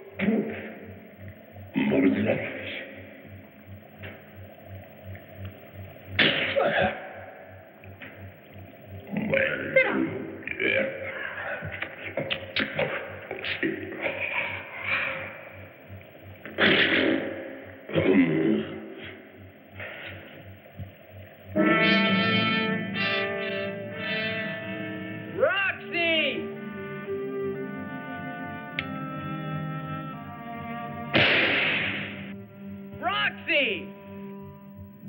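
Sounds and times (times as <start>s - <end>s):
film music sustained notes: 21.0s - 35.0s.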